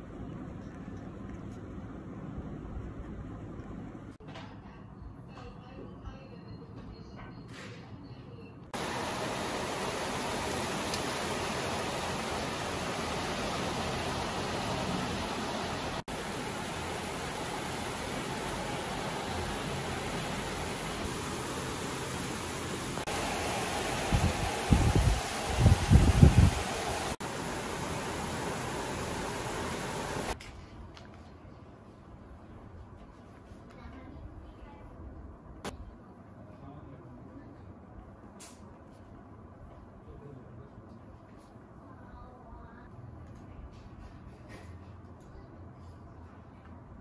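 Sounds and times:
heavy rain falling: 0:08.8 - 0:30.4.

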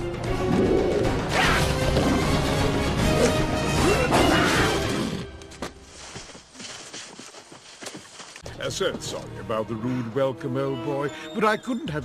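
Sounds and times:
dramatic orchestral music: 0:00.0 - 0:05.9, 0:08.5 - 0:12.0.

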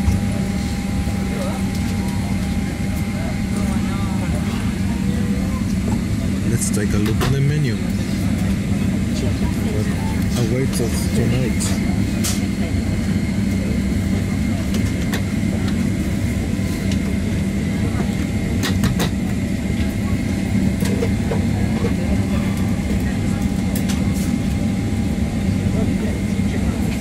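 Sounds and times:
airplane cabin hum: 0:00.0 - 0:27.0.

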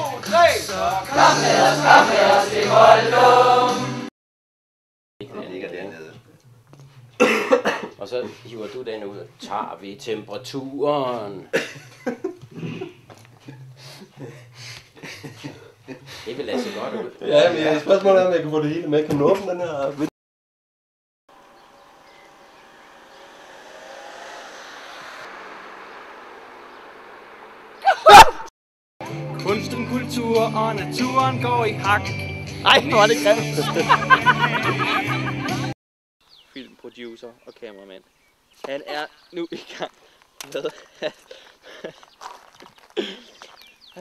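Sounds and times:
person coughing: 0:07.2 - 0:08.0, 0:43.0 - 0:43.3
car passing: 0:21.4 - 0:28.5
brief loud sound: 0:22.4 - 0:28.5.

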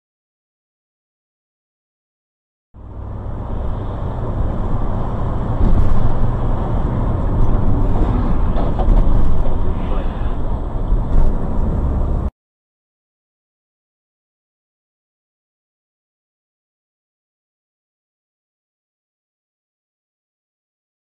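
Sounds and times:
car engine and road rumble: 0:02.8 - 0:12.3.

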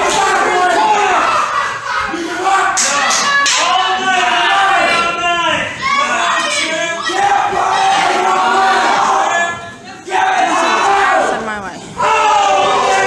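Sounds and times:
crowd noise: 0:00.0 - 0:13.0
spectators yelling: 0:00.0 - 0:13.0.

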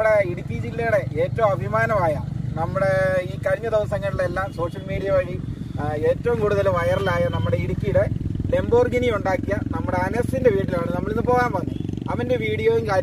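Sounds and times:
man talking: 0:00.0 - 0:13.0.

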